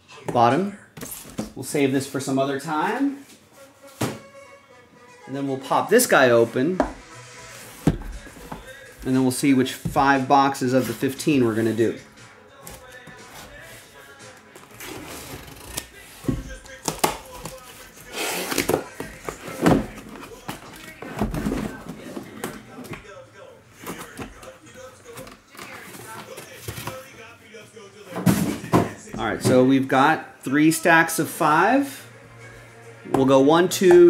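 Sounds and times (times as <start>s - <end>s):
faint background music: 0.0s - 34.0s.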